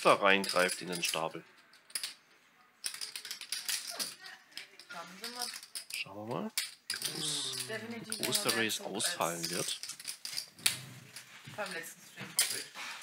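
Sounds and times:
poker chips clattering: 0.4s - 11.8s, 12.4s - 12.8s
quiet talk: 6.0s - 9.8s.

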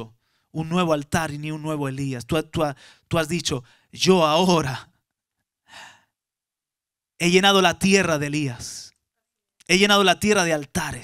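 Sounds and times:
man breathing: 5.6s - 6.2s.

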